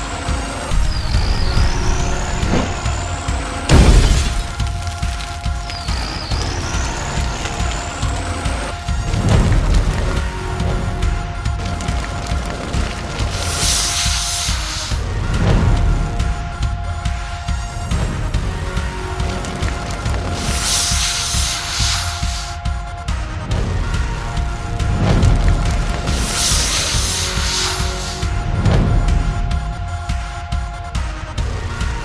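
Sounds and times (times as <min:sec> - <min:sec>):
hissing water spray: 0:00.0 - 0:16.2, 0:18.4 - 0:22.7, 0:24.0 - 0:28.6
background music with low beat: 0:00.0 - 0:32.0
deep dense rumble: 0:00.3 - 0:13.8, 0:14.7 - 0:22.4, 0:23.2 - 0:30.7
thin high whine: 0:26.1 - 0:28.4.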